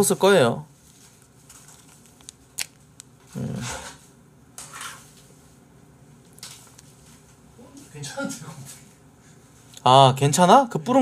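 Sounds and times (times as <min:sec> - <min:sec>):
plastic sachet ripping: 0:01.5 - 0:02.8
plastic sachet clicks and crinkles: 0:01.5 - 0:03.1.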